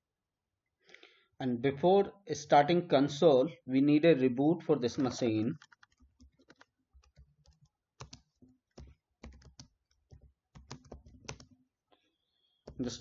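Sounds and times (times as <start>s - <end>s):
computer keyboard keystrokes: 5.6s - 11.6s.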